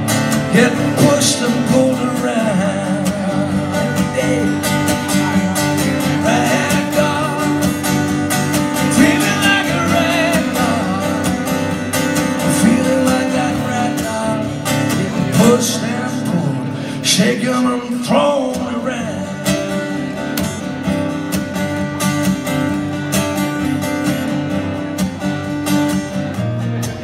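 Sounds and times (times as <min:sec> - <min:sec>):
acoustic guitar strumming: 0:00.0 - 0:27.0.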